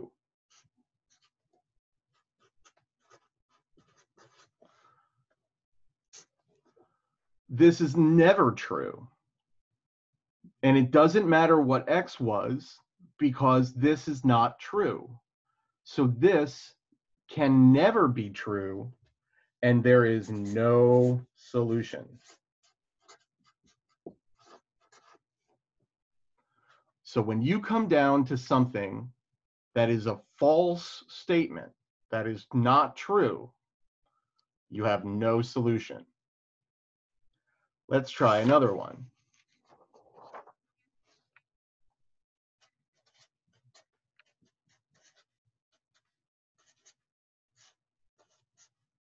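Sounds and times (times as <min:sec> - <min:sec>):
marker scratching on paper: 0:02.1 - 0:04.8, 0:19.9 - 0:25.3, 0:42.6 - 0:48.9.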